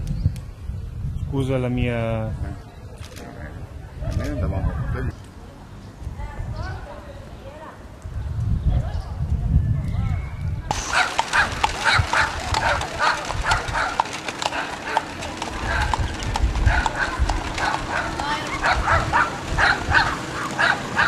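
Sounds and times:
horse hooves clopping on asphalt: 0:10.7 - 0:21.0
dog barking: 0:10.8 - 0:16.0, 0:16.6 - 0:21.0.

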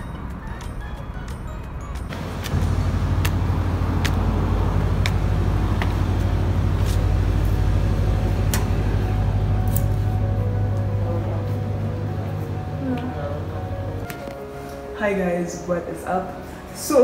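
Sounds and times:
footsteps on tile floor: 0:02.0 - 0:07.5
loud steady low hum: 0:02.1 - 0:14.2.

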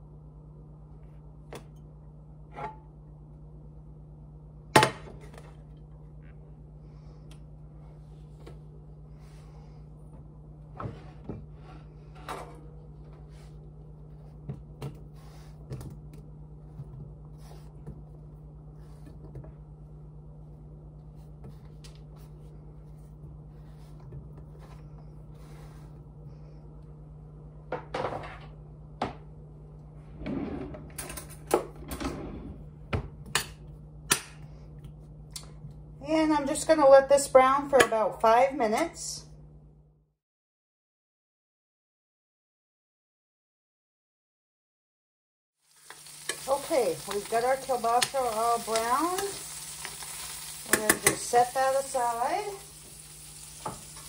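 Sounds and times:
steady low hum: 0:00.0 - 0:40.1.

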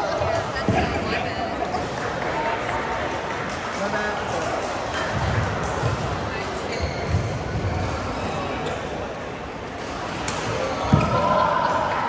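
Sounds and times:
people talking: 0:00.0 - 0:03.1.

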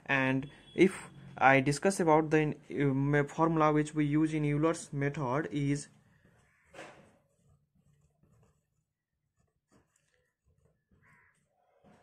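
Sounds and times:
pen writing on paper: 0:06.0 - 0:12.0.

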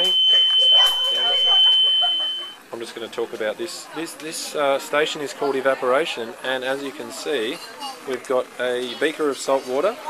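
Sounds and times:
high-pitched electronic tone: 0:00.0 - 0:02.6
people talking: 0:00.0 - 0:10.0.

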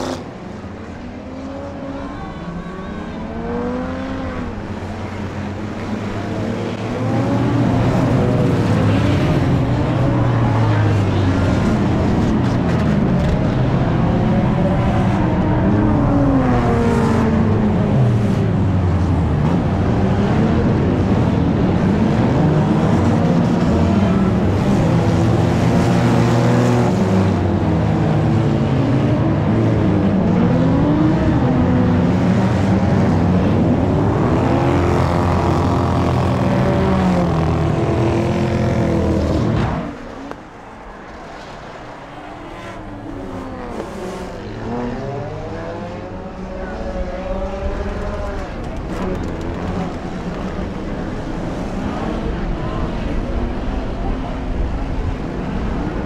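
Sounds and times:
stock car engines revving: 0:00.0 - 0:56.0.

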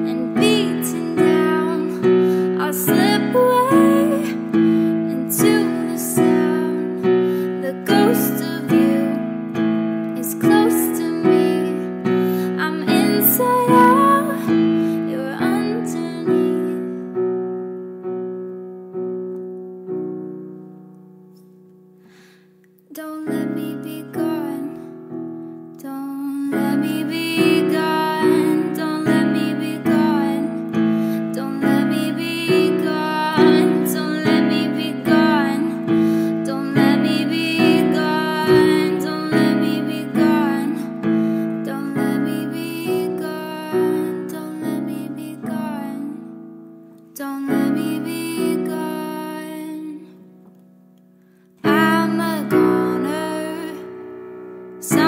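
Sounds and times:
piano chords ringing: 0:00.0 - 0:22.2, 0:23.0 - 0:55.0.

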